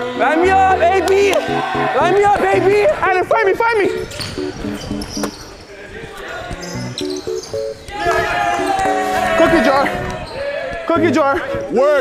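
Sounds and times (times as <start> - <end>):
music track: 0.0 - 5.3.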